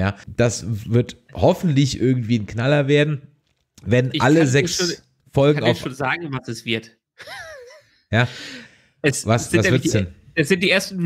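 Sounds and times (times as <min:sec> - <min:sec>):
man asking a question: 0:00.0 - 0:07.0, 0:09.0 - 0:11.0
breathy vocal sound: 0:08.3 - 0:09.0.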